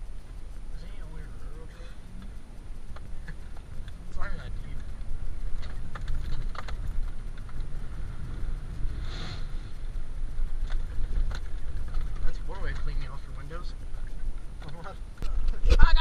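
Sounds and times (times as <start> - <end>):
truck engine rumble: 0.0 - 15.6.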